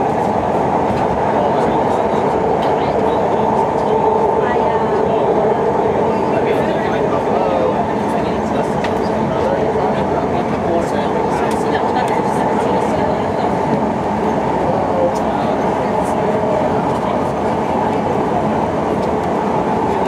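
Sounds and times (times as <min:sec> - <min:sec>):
train rail noise from inside: 0:00.0 - 0:20.0.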